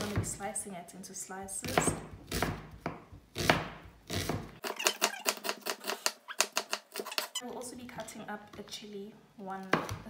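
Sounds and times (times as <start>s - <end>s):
knife slicing onion: 1.6s - 7.4s.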